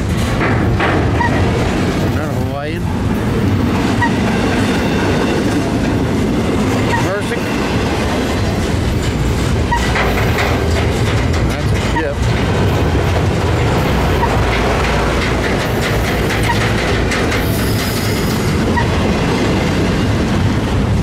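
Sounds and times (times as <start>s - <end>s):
clickety-clack of train trucks: 0.0s - 21.0s
freight train wheels on rails: 0.0s - 21.0s
short high squeaks: 6.9s - 7.4s, 9.7s - 10.2s, 16.4s - 16.7s.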